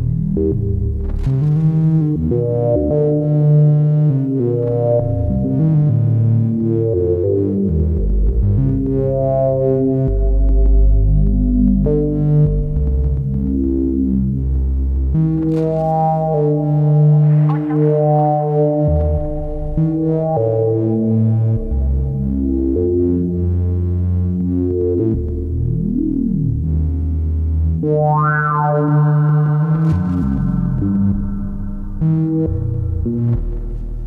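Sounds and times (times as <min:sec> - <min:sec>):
ambient synthesizer chords: 0:00.0 - 0:34.0
deep synth bass: 0:00.0 - 0:34.0.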